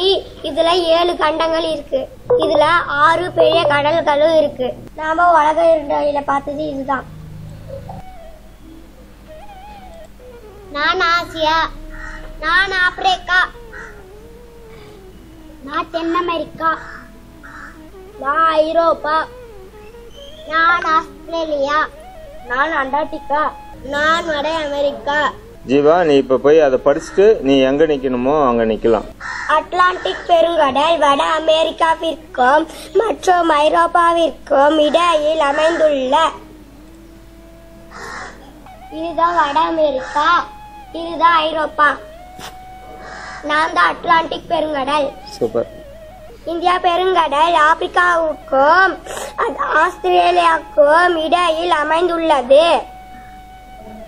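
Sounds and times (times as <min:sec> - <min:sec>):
faint steady hum: 0:00.0 - 0:54.0
crow cawing: 0:10.8 - 0:15.9, 0:16.6 - 0:18.2, 0:26.9 - 0:27.5, 0:29.2 - 0:30.8, 0:34.6 - 0:36.4, 0:37.9 - 0:40.8, 0:42.2 - 0:43.8
faint wavering held tone: 0:53.0 - 0:54.0.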